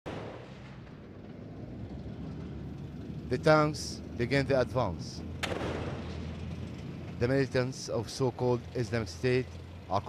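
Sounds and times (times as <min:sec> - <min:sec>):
low steady rumble: 0:00.1 - 0:10.0.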